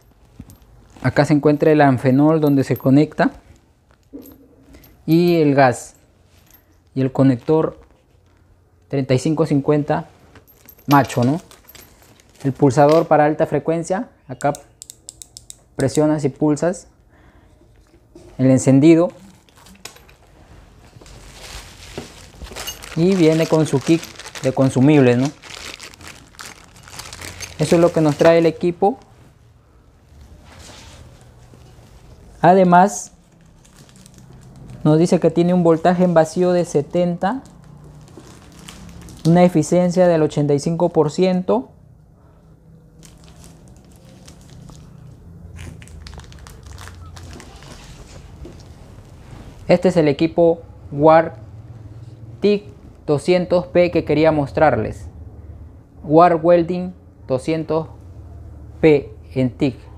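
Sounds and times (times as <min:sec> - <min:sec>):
plastic packaging crinkling: 0:10.3 - 0:13.2, 0:19.3 - 0:29.1, 0:33.2 - 0:36.6, 0:37.3 - 0:39.5, 0:43.0 - 0:48.8.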